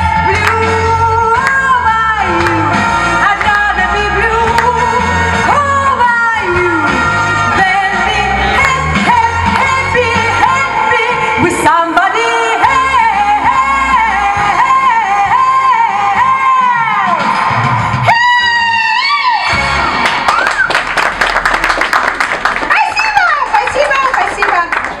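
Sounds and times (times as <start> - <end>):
woman singing: 0.0 - 17.2
backing music: 0.0 - 22.7
audience applause with whoops: 19.8 - 25.0.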